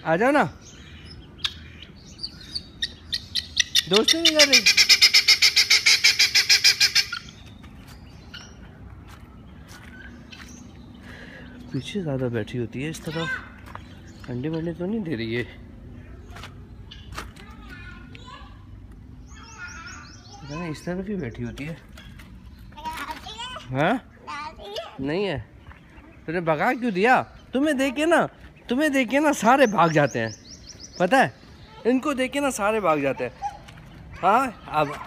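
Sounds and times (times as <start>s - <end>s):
guineafowl calling: 0.6s - 7.5s, 32.6s - 35.0s
small bird chirping: 0.6s - 12.0s, 19.2s - 35.0s.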